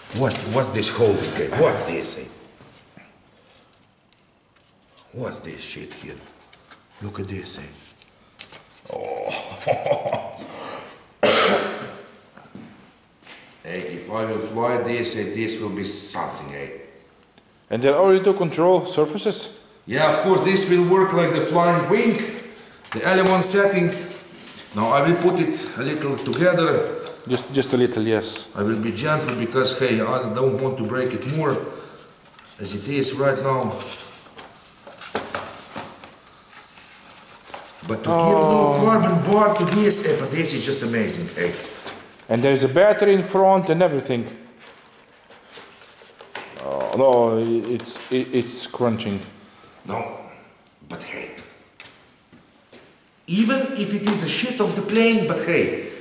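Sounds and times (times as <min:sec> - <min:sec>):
man coughing loudly: 0:11.2 - 0:12.0.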